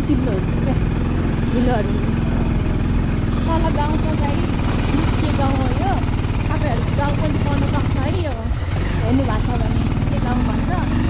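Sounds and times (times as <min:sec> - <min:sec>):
motorcycle engine at low speed: 0:00.0 - 0:11.0.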